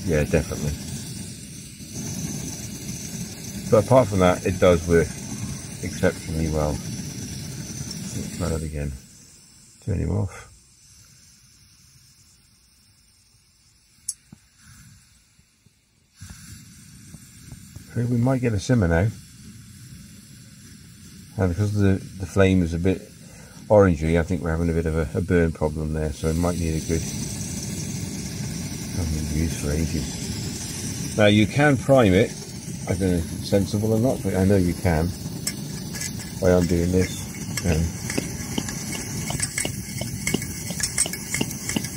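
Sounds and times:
camping stove burner hissing: 0.0s - 41.9s.

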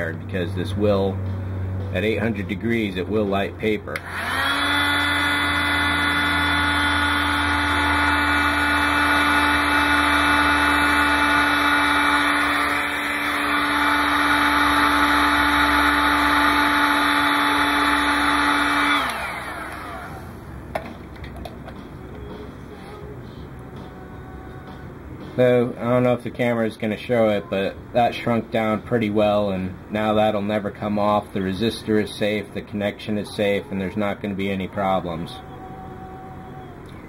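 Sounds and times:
hot air gun whine: 3.9s - 23.1s.

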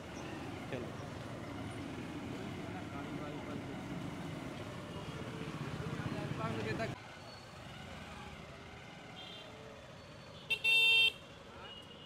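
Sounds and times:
faint street traffic: 0.0s - 12.0s
vehicle horn honking: 10.5s - 12.0s.

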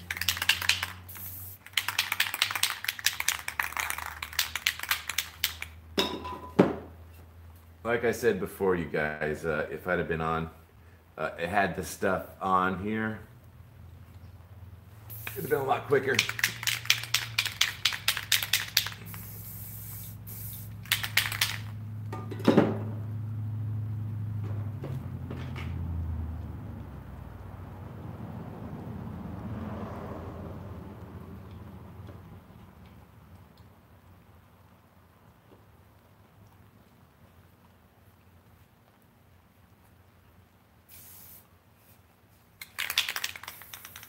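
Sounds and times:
spray burst: 0.0s - 5.8s, 15.1s - 21.8s, 40.9s - 42.0s, 42.6s - 44.0s
spray can rattling: 0.0s - 5.8s, 15.1s - 21.8s, 40.9s - 42.0s, 42.6s - 44.0s
low steady hum: 5.8s - 15.9s.

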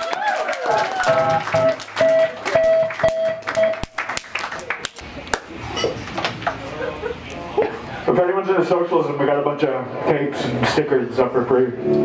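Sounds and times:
room chatter: 0.0s - 11.7s.

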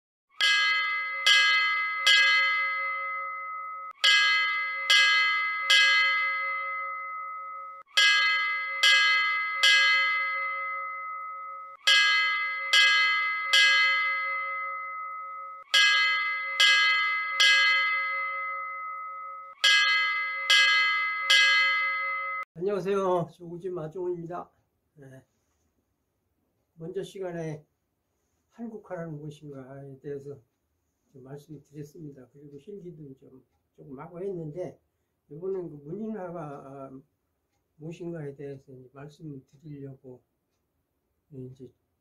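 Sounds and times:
bell ringing: 0.4s - 22.5s.

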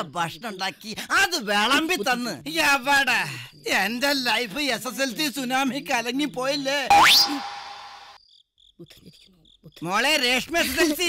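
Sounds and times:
crickets chirping: 8.1s - 11.0s.

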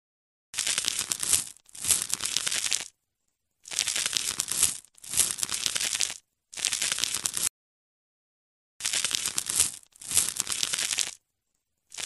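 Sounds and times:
crackly scraping and crunching: 0.6s - 3.0s, 3.6s - 7.5s, 8.8s - 11.2s.

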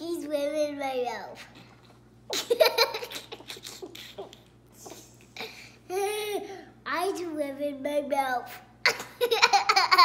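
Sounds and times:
person laughing: 2.3s - 5.2s.

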